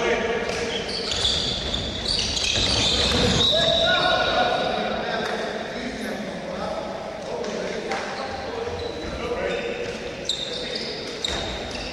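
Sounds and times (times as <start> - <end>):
players and spectators calling out: 0.0 - 11.9
shoe squeaks: 0.5 - 4.5, 8.1 - 11.9.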